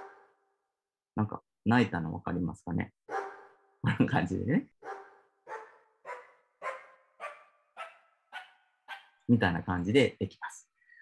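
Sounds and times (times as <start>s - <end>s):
sampled dog barks rising in pitch: 0.0s - 0.2s, 3.1s - 3.5s, 4.8s - 9.1s.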